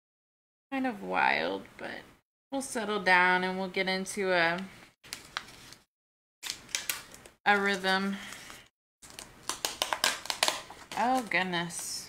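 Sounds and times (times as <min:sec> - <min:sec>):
card and plastic clicks and rustles: 0:06.4 - 0:11.3.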